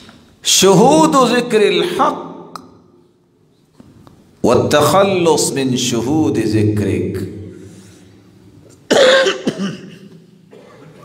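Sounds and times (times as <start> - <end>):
man coughing: 8.7 - 11.0
throat clearing: 8.8 - 11.0.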